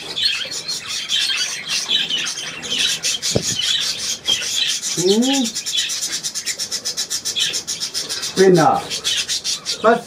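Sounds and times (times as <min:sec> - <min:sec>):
budgerigars chattering: 0:00.0 - 0:10.0
sharp knock: 0:03.3 - 0:03.7.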